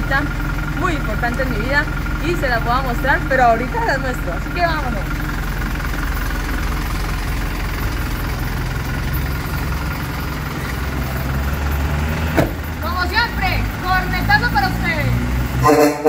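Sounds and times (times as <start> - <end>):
diesel truck engine idling: 0.0 - 16.0
short sharp sound: 15.6 - 16.0.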